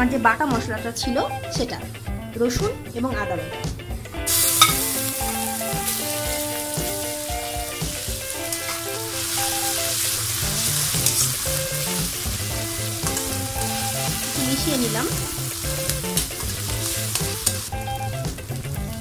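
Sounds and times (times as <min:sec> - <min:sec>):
paste sizzling in hot oil: 0:04.3 - 0:19.0
metal spatula scraping pan: 0:08.4 - 0:11.6.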